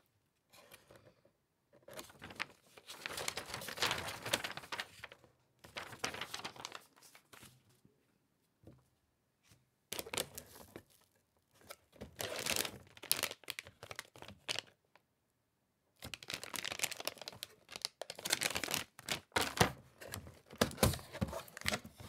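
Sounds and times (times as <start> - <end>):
plastic bag crinkling: 2.0 - 5.0, 5.7 - 6.9, 12.2 - 14.7, 16.0 - 19.6.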